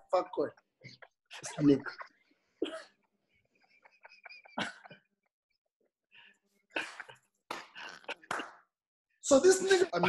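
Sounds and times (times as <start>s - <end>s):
men laughing: 1.0s - 2.6s, 3.3s - 5.3s.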